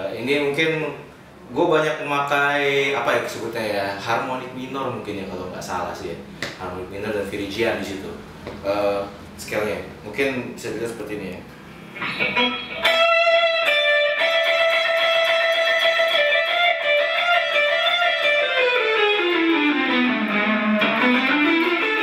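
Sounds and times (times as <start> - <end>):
electric guitar lead: 11.7 - 22.0.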